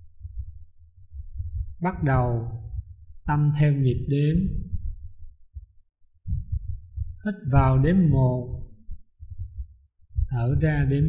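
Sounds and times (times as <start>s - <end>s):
man speaking: 1.8s - 4.7s, 7.3s - 8.7s, 10.3s - 11.0s
wind buffeting microphone: 4.1s - 5.2s, 6.3s - 8.6s.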